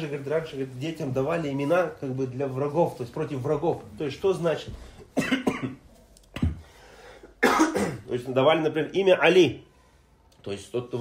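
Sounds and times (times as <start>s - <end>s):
man speaking: 0.0s - 4.9s, 7.8s - 9.7s, 10.4s - 11.0s
cough: 5.1s - 5.8s, 6.4s - 6.6s, 7.4s - 8.1s.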